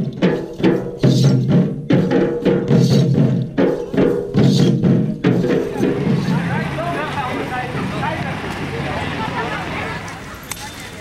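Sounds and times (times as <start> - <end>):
drumming: 0.0 - 9.8
crowd babble: 3.8 - 11.0.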